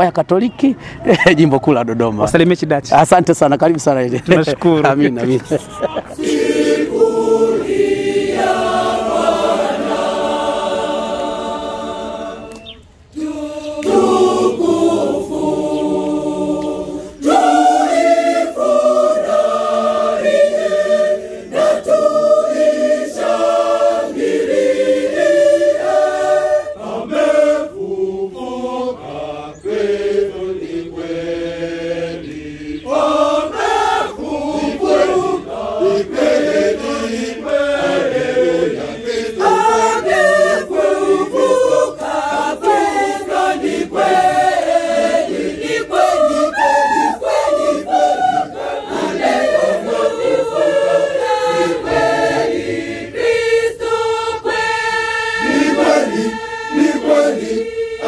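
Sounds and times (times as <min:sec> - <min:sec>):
choir singing: 0:05.8 - 0:58.0.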